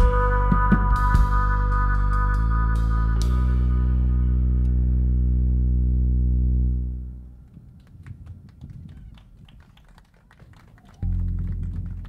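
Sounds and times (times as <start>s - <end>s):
deep synthesizer bass note: 0.0s - 7.5s, 11.0s - 12.0s.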